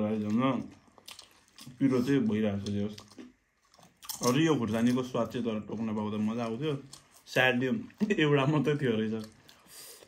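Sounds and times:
chewing crisp potato chips: 0.0s - 10.0s.

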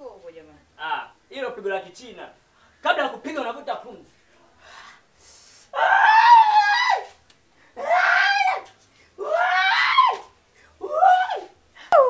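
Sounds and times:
person screaming: 5.8s - 7.1s, 9.2s - 10.2s.

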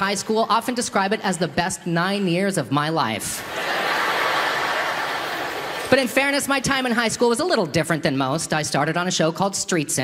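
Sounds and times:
audience laughing: 3.4s - 6.2s.

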